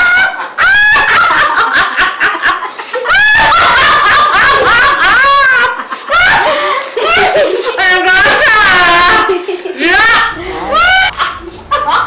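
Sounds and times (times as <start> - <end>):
woman laughing hard: 0.0 - 12.0.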